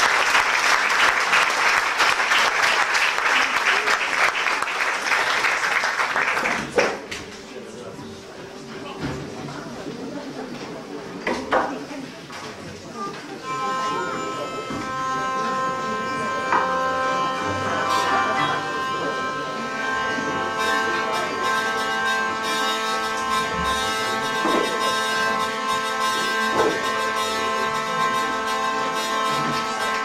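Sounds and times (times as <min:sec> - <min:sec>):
hurdy-gurdy drone: 0:07.2 - 0:09.9, 0:13.2 - 0:30.0.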